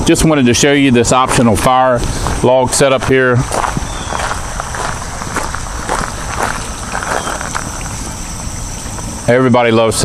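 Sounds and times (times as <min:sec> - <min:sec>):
steady background hiss: 0:00.0 - 0:10.0
footsteps crunching on gravel: 0:00.9 - 0:08.3.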